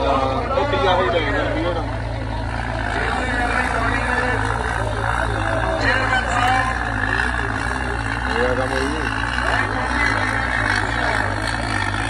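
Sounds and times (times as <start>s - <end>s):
people's voices: 0.0s - 12.0s
tractor diesel engine running: 0.0s - 12.0s.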